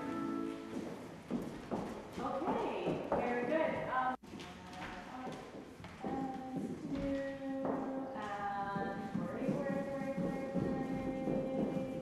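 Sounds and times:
pointe shoes tapping on wooden floor: 0.0 - 12.0
voice or music: 6.0 - 12.0.

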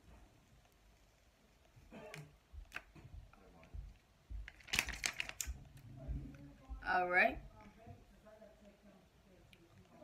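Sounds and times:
plastic film crinkling: 4.4 - 5.8.

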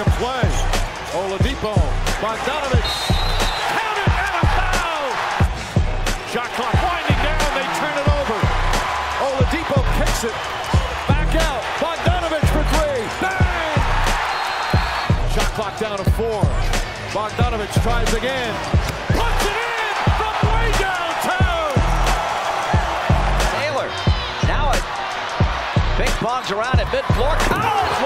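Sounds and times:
arena crowd noise: 0.0 - 28.0
background music: 0.0 - 28.0.

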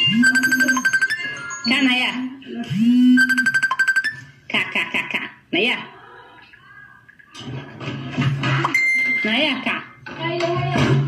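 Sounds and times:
high steady beep: 0.0 - 1.9, 2.7 - 4.3, 8.7 - 9.4.

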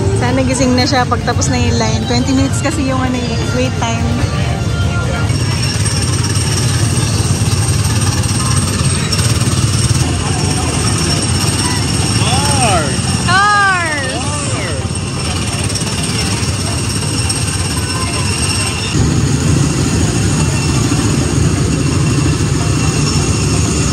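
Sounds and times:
ride car engines droning: 0.0 - 23.9.

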